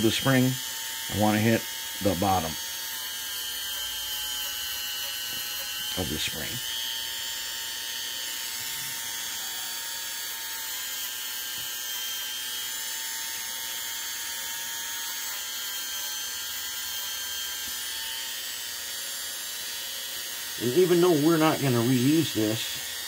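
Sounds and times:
rotary tool whining: 0.0s - 23.0s.

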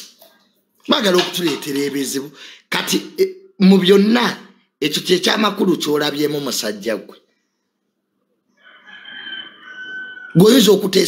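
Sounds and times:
high-pitched animal call: 8.6s - 10.4s.

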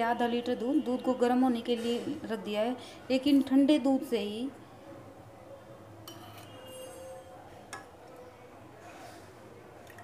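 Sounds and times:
steel spoon clinking against saucepan: 6.1s - 7.3s.

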